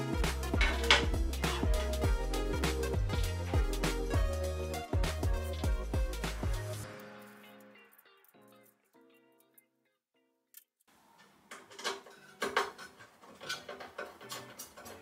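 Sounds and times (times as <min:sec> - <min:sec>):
background music: 0:00.0 - 0:09.4
small parts clicking and knocking: 0:10.5 - 0:15.0.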